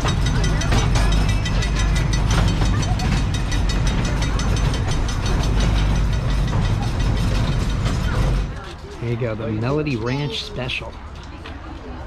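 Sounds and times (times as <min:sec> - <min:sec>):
miniature train rattling on track: 0:00.0 - 0:12.0.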